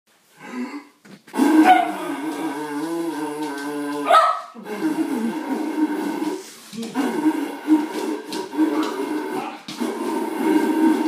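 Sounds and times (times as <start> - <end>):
man droning through tube: 0.4 - 11.0.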